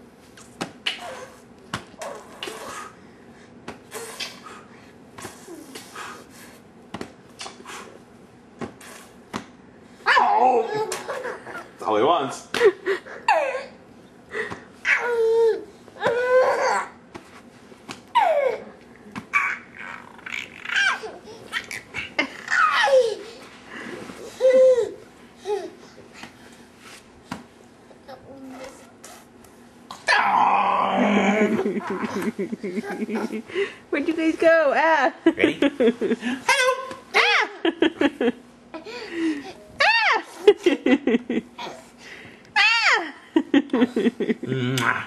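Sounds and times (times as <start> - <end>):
toddler laughing: 19.4 - 23.4, 31.1 - 33.6.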